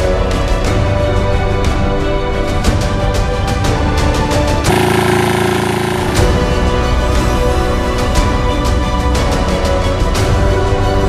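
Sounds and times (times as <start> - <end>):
small engine chugging: 4.7 - 6.6.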